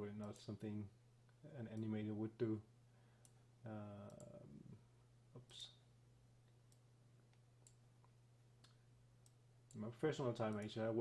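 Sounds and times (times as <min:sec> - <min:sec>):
low electrical hum: 0:00.0 - 0:11.0
computer mouse clicks: 0:04.0 - 0:04.4, 0:10.4 - 0:10.8.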